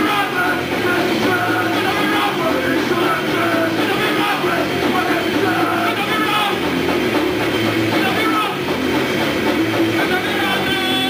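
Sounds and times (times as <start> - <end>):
grindcore band playing live: 0.0 - 11.0.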